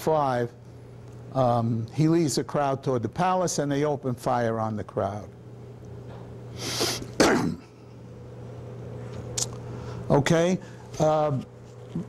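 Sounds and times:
man coughing: 7.0 - 7.9.

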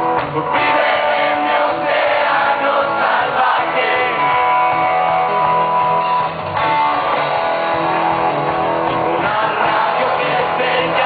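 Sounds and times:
live rock band playing: 0.0 - 11.0
electric guitar held notes: 4.0 - 9.2.

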